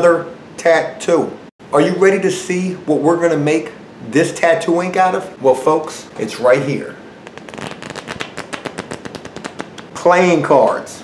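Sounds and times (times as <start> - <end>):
playing cards riffling: 7.2 - 9.9.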